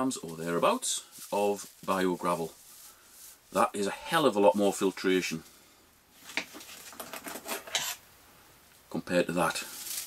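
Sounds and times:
rustles and clicks of handled parts: 6.2s - 8.0s.

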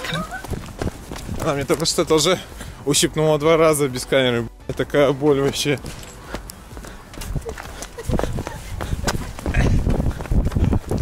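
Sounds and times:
running footsteps on asphalt: 0.0s - 4.0s, 4.6s - 11.0s.

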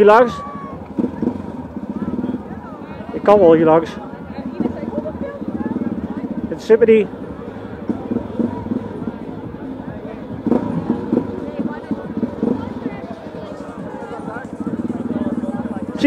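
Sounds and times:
dirt bike engine running: 0.0s - 16.0s
people talking: 0.0s - 16.0s.

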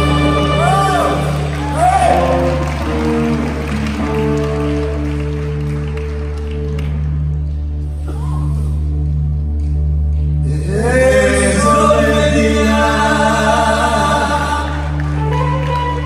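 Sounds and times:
audience applause: 0.0s - 7.7s, 14.5s - 16.0s
live band playing: 0.0s - 16.0s
steady bass line: 0.0s - 16.0s.

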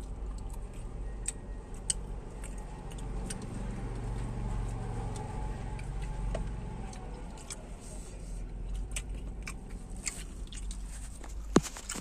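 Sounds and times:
truck engine drone: 0.0s - 12.0s.

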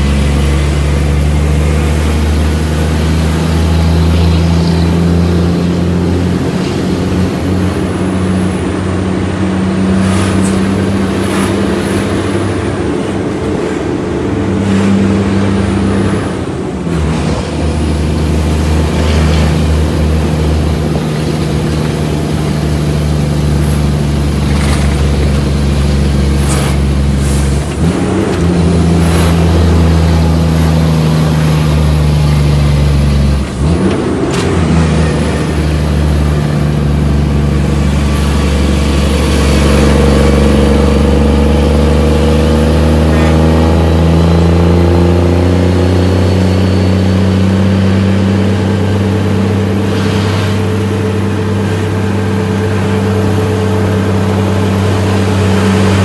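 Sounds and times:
diesel truck engine from inside cab: 0.0s - 56.0s.

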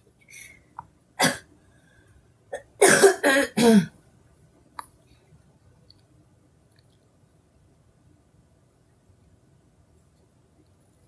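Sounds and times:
woman coughing: 2.6s - 3.9s.

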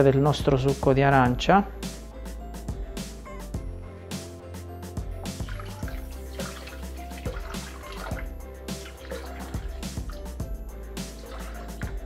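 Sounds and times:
background music with steady beat: 0.0s - 12.0s
juice pouring into steel bowl: 5.4s - 10.4s, 11.0s - 12.0s.

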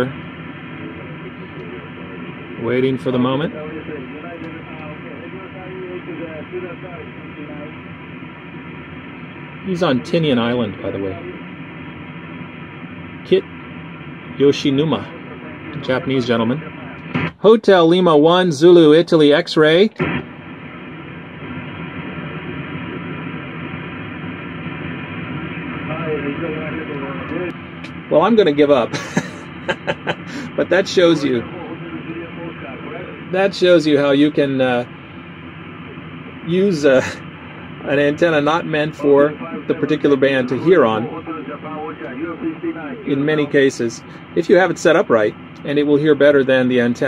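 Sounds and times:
faint radio speech: 0.0s - 7.8s, 9.6s - 11.5s, 14.4s - 20.2s, 25.8s - 34.9s, 35.8s - 47.0s
receiver hiss: 0.0s - 47.0s.

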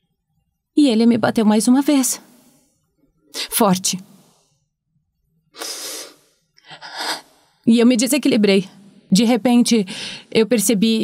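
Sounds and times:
woman breathing: 5.5s - 7.5s, 9.9s - 10.4s.

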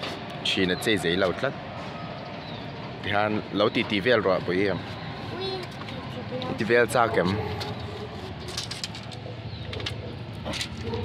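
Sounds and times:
pigeon cooing: 9.2s - 11.0s.

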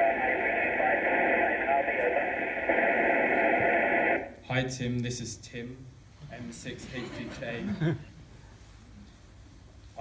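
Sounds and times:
faint man's voice over radio: 0.0s - 3.6s
radio hiss: 0.0s - 4.4s.

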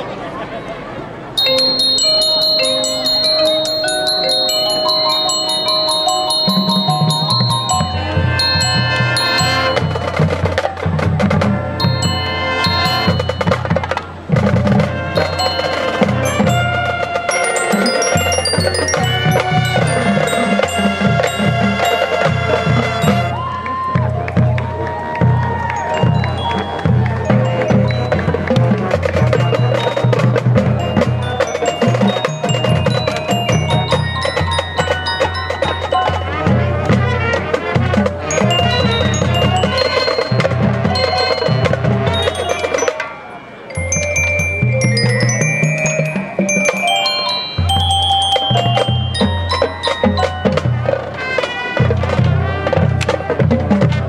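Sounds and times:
glockenspiel high notes: 1.4s - 52.9s
drums: 1.4s - 54.0s
marching band playing: 1.4s - 54.0s.

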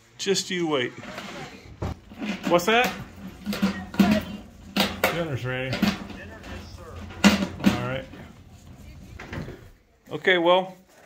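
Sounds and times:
low steady rumble: 1.9s - 9.8s
person speaking: 2.2s - 9.8s.

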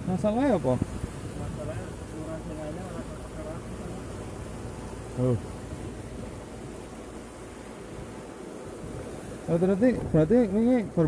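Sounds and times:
sea surf on rocky shore: 0.0s - 11.0s.

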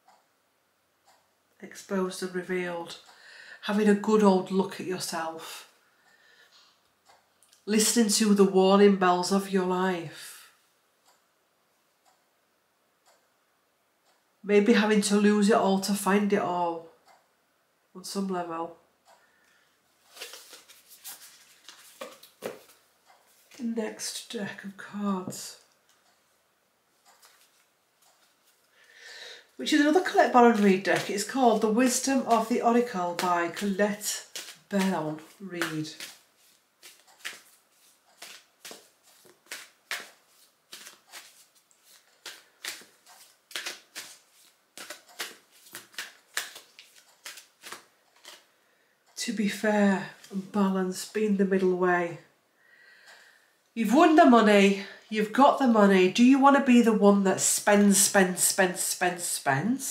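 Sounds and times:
cards rustling and tapping: 20.1s - 23.6s, 27.2s - 28.6s, 29.7s - 48.5s.

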